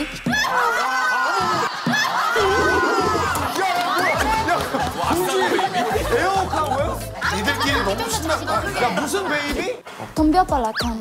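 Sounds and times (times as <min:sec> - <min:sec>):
many voices chattering: 0:01.7 - 0:09.8
low background music: 0:02.5 - 0:11.0.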